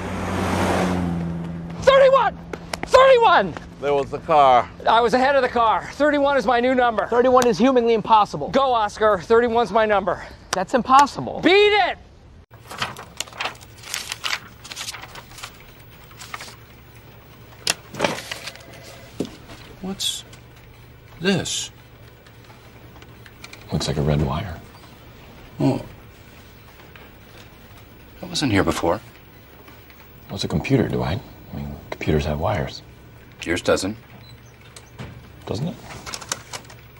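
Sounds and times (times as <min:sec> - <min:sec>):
car driving past: 0:00.0 - 0:01.8
papers and objects handled on desk: 0:12.6 - 0:28.2, 0:34.1 - 0:36.9
steady low hum: 0:12.6 - 0:36.9.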